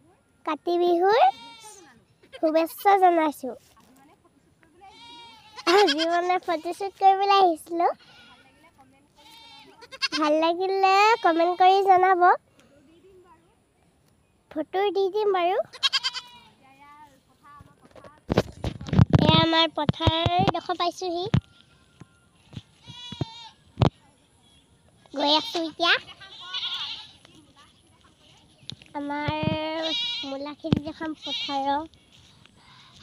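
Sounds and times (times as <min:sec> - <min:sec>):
girl's drawn-out high voice: 0:00.5 - 0:03.6, 0:29.0 - 0:31.9
livestock bleating: 0:01.1 - 0:01.9, 0:04.9 - 0:06.8, 0:07.9 - 0:08.6, 0:09.2 - 0:10.3, 0:10.9 - 0:11.8, 0:15.7 - 0:16.6, 0:22.8 - 0:23.6, 0:25.2 - 0:27.2, 0:29.6 - 0:30.4, 0:31.1 - 0:31.9.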